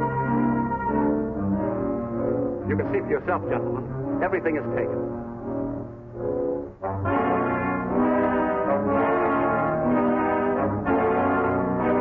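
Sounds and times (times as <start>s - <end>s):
orchestral music led by brass: 0.0s - 12.0s.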